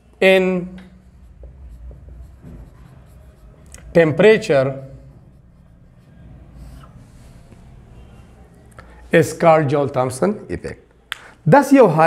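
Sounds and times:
marker scratching on whiteboard: 0.0 - 8.2.

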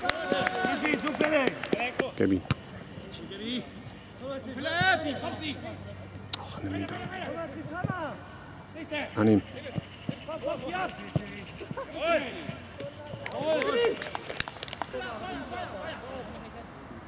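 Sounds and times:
players shouting: 0.0 - 1.9.

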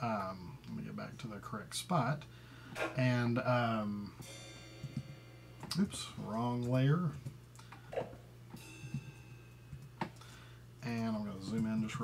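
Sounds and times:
suspended cymbal stroke: 3.8 - 6.2, 8.6 - 9.7.

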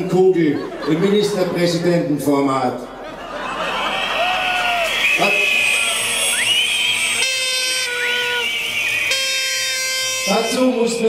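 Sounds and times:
whistles wavering: 3.7 - 11.0
toy horns blasting: 5.1 - 11.0.

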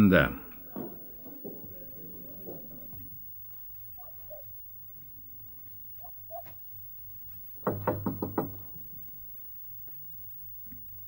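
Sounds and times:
knocking on wooden door: 7.6 - 9.0.

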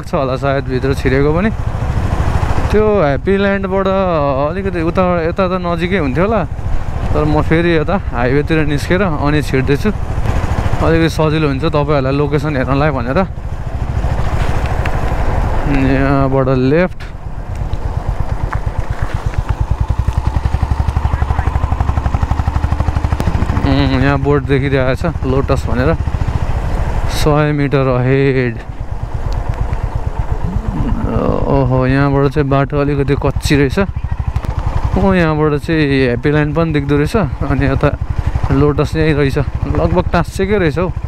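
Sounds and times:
man talking: 0.0 - 1.5, 2.7 - 6.5, 7.1 - 10.0, 10.8 - 13.3, 15.6 - 17.1, 21.0 - 21.6, 23.4 - 26.0, 27.1 - 28.6, 30.4 - 33.9, 34.9 - 40.9
motorcycle engine rumbling: 0.0 - 41.0.

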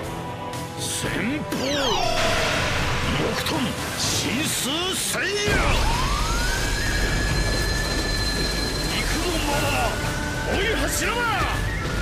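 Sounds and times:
deep rumble: 2.0 - 9.2.

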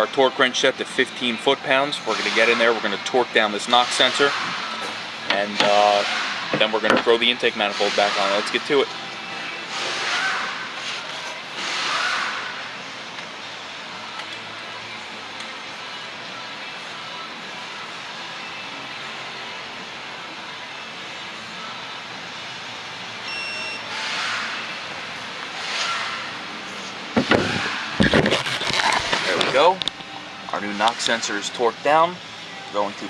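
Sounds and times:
short high beep: 23.3 - 23.9.

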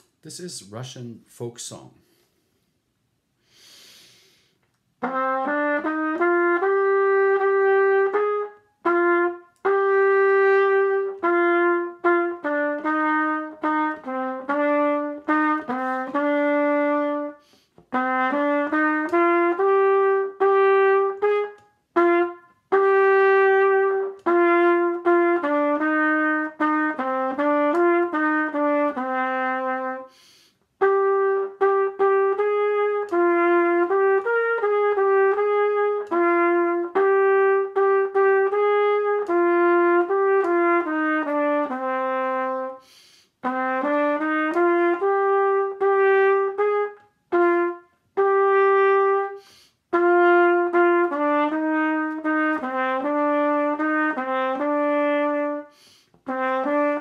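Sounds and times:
trumpet playing folk melody: 5.0 - 57.0.

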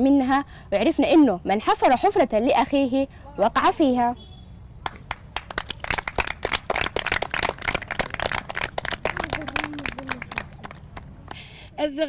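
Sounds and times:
children clapping: 4.8 - 11.4.

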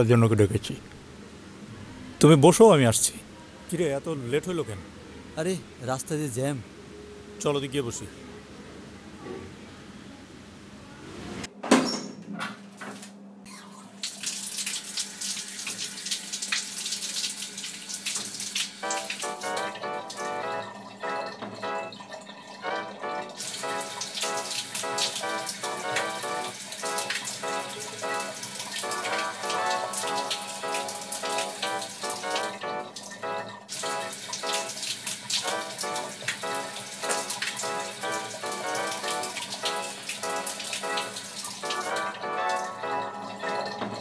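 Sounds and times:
tap water splashing into basin: 14.0 - 22.7
music of short repeated notes: 18.8 - 34.7, 35.4 - 44.0.

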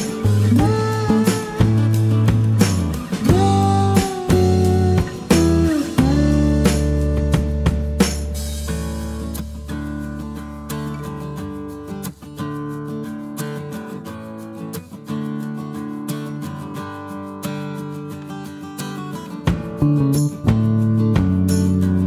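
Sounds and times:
strummed guitar chords: 0.0 - 22.0.

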